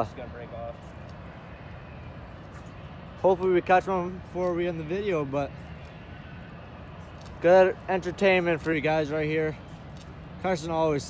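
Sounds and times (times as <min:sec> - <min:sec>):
faint outdoor rumble: 0:00.0 - 0:11.0.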